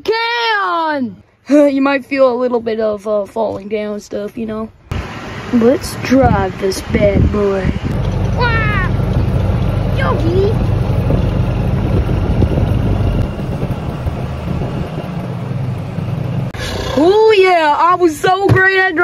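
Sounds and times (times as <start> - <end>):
golf cart rumbling: 4.4 - 19.0.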